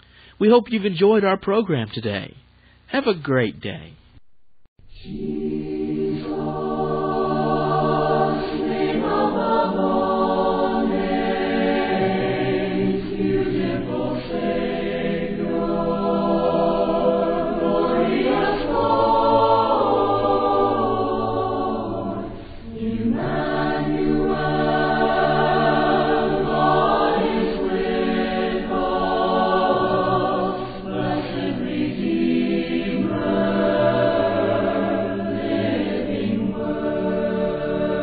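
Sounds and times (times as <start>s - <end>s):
choir singing a cappella: 4.9s - 38.0s.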